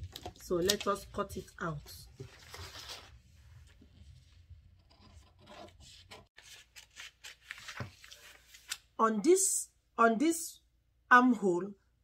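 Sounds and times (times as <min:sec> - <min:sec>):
paper rustling and sliding: 0:02.1 - 0:08.8.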